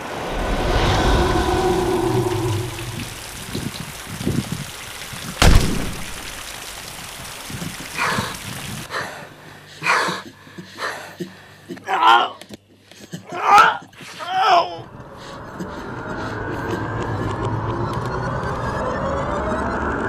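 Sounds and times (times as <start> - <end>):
whooshing swell: 0.0 - 3.5
low rumble: 0.0 - 4.2
sharp bang: 5.4 - 6.2.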